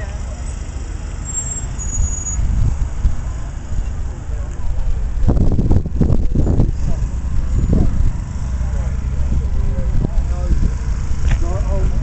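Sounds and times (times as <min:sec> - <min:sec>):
wind buffeting microphone: 0:02.0 - 0:12.0
faint voices: 0:06.1 - 0:12.0.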